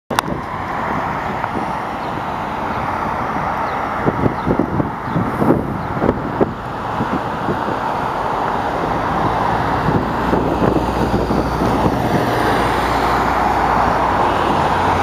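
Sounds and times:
passing vehicles hiss: 0:00.2 - 0:15.0.

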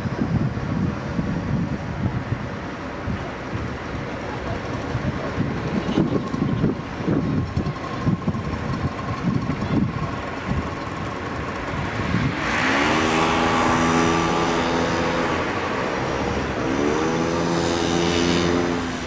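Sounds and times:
vehicle engine accelerating: 0:05.7 - 0:19.0.

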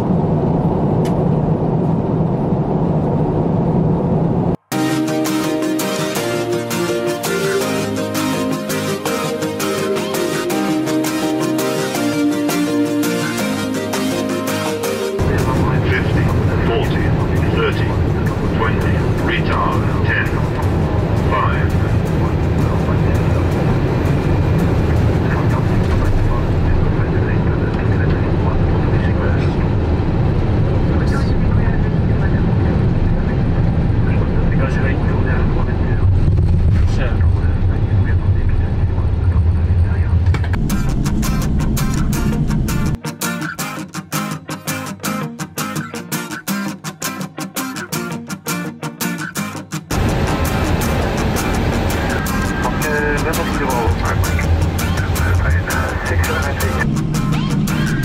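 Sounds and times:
low rumble: 0:00.0 - 0:04.6, 0:15.2 - 0:43.0, 0:49.9 - 0:58.0
aircraft cockpit airflow and engines: 0:00.0 - 0:43.1, 0:49.9 - 0:58.0
guitar music: 0:04.7 - 0:27.0, 0:40.3 - 0:58.0
person speaking: 0:52.2 - 0:57.0.

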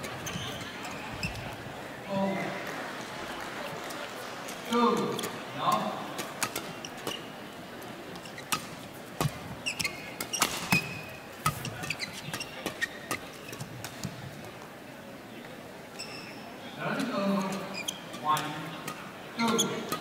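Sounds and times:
shoes squeaking on court: 0:00.0 - 0:01.7, 0:05.0 - 0:05.4, 0:06.2 - 0:07.4, 0:08.1 - 0:14.3, 0:15.9 - 0:16.5, 0:17.4 - 0:18.2, 0:18.9 - 0:20.0
rackets hitting shuttlecock: 0:05.0 - 0:07.2, 0:08.2 - 0:14.1, 0:18.1 - 0:20.0.

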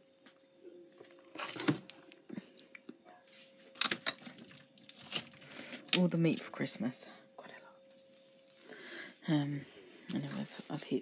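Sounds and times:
faint steady hum: 0:00.0 - 0:11.0
plastic packaging crinkling: 0:03.7 - 0:06.0.

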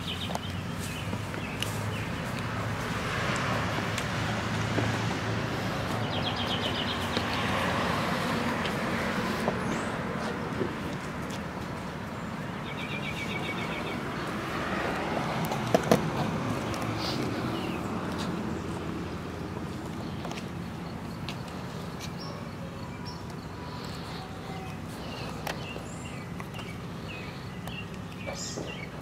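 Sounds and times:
car passing with tyre noise: 0:00.0 - 0:29.0.

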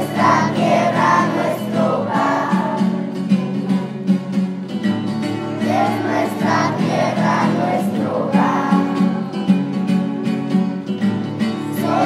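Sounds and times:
children singing: 0:00.0 - 0:03.2, 0:05.6 - 0:09.5, 0:11.7 - 0:12.0
strummed acoustic guitar: 0:00.0 - 0:12.0.

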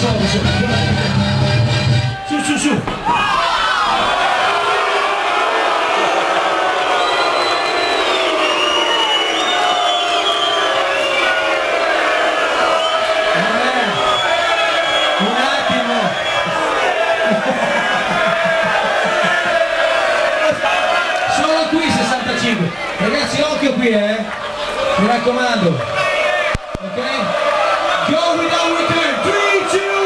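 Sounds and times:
large crowd cheering: 0:00.0 - 0:30.0.

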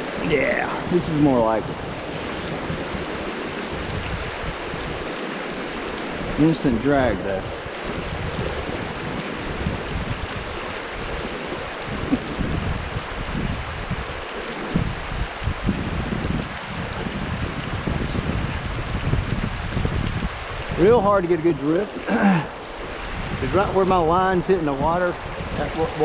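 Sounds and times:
creek water rushing over rocks: 0:00.0 - 0:26.0.

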